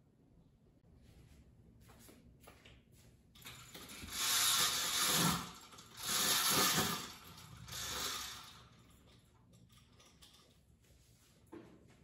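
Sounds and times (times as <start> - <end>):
roller shade chain rattling: 3.4 - 10.6.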